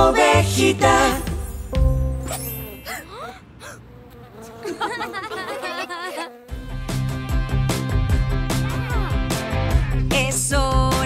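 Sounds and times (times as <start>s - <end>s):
short rising swoops: 2.1s - 3.2s
cartoon bee buzzing: 2.1s - 8.1s.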